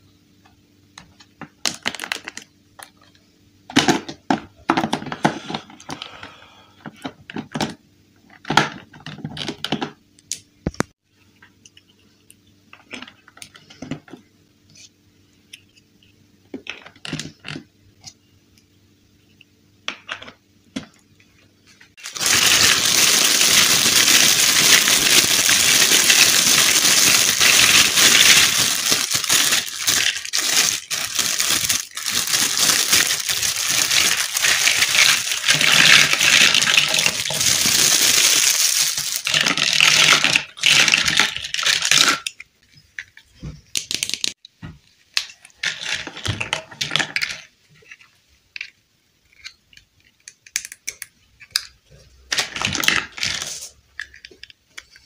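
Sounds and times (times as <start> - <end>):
small plastic pieces falling out: 1.4 - 3.0, 22.0 - 42.4, 52.3 - 55.0
plastic bag crinkling: 1.6 - 3.0, 21.9 - 42.3.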